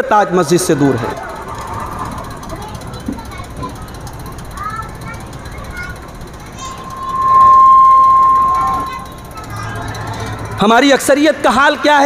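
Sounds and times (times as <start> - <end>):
microphone feedback whistle: 6.5 - 9.8.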